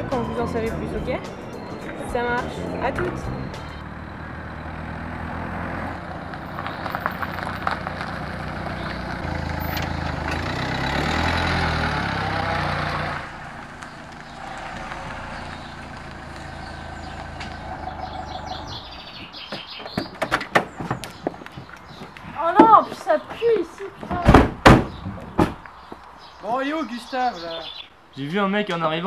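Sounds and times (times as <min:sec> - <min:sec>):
car engine running: 0:00.0 - 0:19.4
tyres on gravel: 0:00.0 - 0:27.9.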